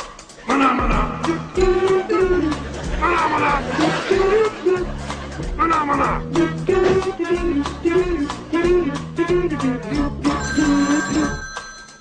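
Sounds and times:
telephone bell ringing: 10.4 - 12.0.

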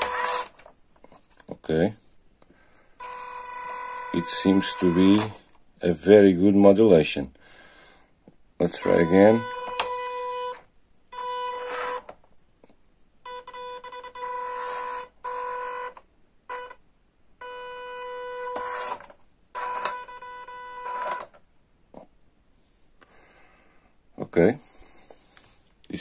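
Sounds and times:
toy car electric motor whining: 0.0 - 0.6, 3.0 - 5.4, 11.2 - 12.1, 13.5 - 16.8, 17.5 - 21.3.

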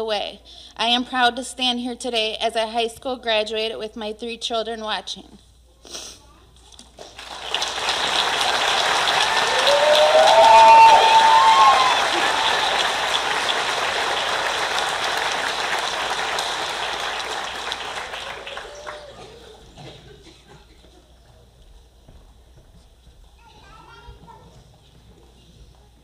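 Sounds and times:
audience applauding: 7.0 - 19.8
people cheering: 7.2 - 19.6.

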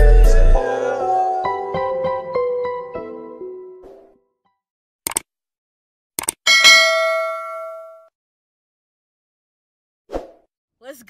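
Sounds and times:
bright bell ding: 6.5 - 8.1.

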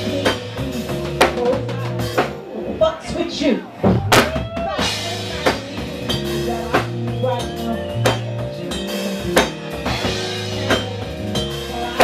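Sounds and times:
woman singing into a microphone: 0.0 - 3.7
bass guitar: 0.0 - 12.0
drums: 0.0 - 12.0.

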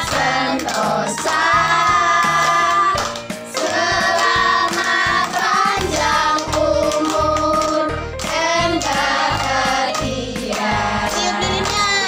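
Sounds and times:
people clapping: 0.0 - 12.0
boy and woman singing: 3.6 - 12.0.

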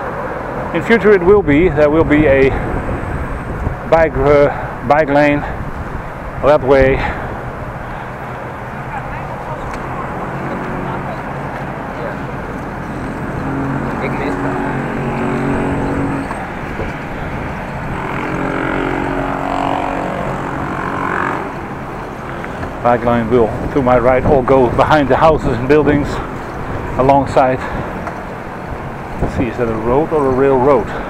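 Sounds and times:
wind rushing: 1.4 - 8.0.

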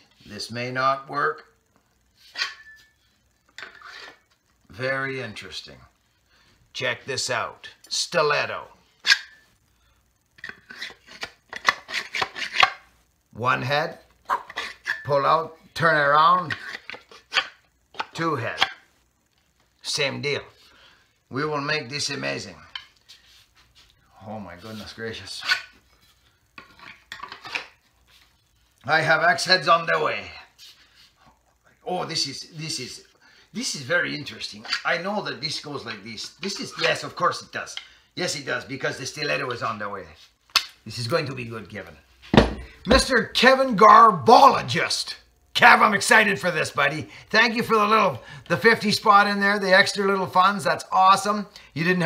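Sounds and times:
axe head scraping on handle: 10.4 - 12.8
axe head knocking on wood: 42.4 - 43.0.

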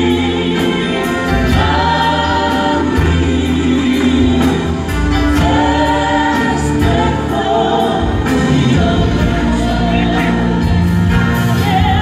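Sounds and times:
band with bass and drums: 0.0 - 12.0
singers in harmony: 0.0 - 12.0.

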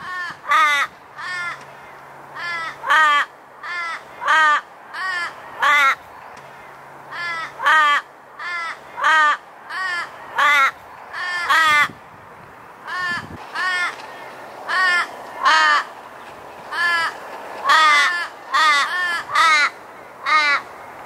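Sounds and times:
raven cawing harshly: 0.0 - 12.0, 12.8 - 16.0, 16.6 - 20.7.

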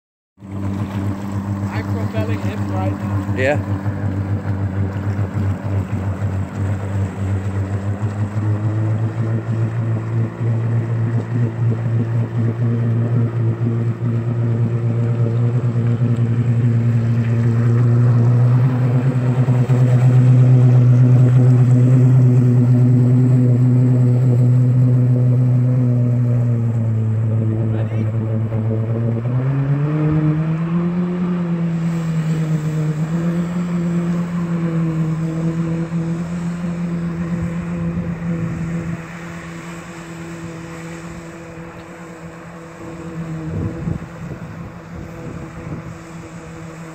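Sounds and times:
jet ski engine running: 0.4 - 46.9.

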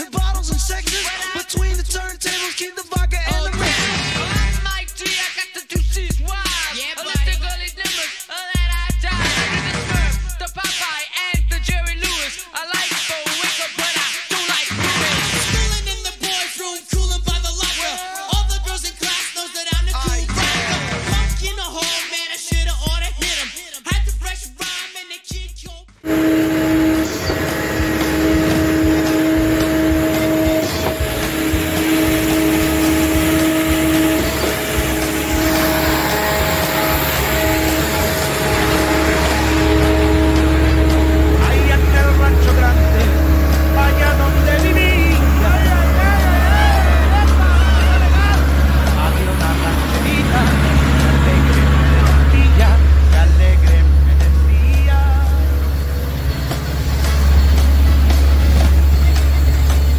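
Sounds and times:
deep low rumble: 26.1 - 59.9
machinery hum with whine: 26.1 - 59.9
voices: 26.1 - 59.9.

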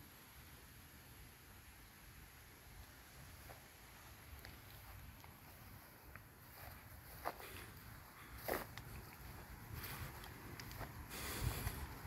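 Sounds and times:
footsteps on grass: 3.2 - 12.0.

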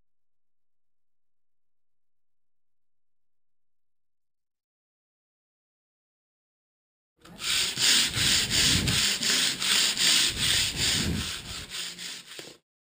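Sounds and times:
sanding strokes on wood: 7.3 - 12.6.

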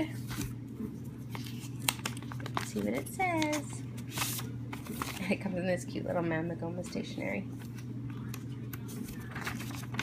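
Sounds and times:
steady low hum: 0.0 - 10.0
packaging rustling and crackling: 1.3 - 5.4, 9.0 - 10.0.

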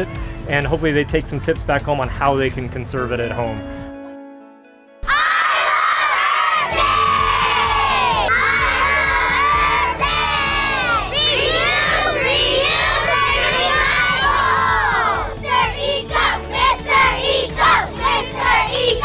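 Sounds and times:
children shouting and cheering: 5.0 - 19.0.

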